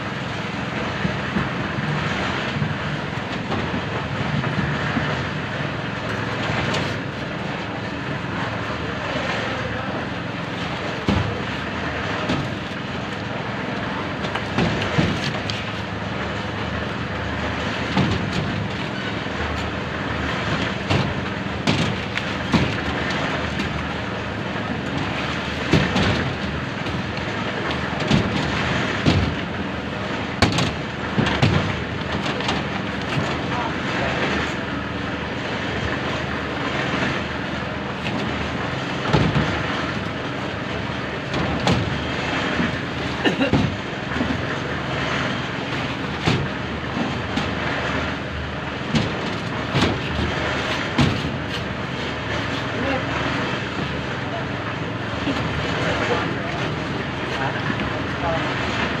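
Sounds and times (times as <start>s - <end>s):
engine drone: 0.0s - 59.0s
workers' voices: 6.9s - 16.1s, 31.4s - 38.8s, 49.7s - 59.0s
buckets clanking on steel rebar: 37.9s - 52.7s.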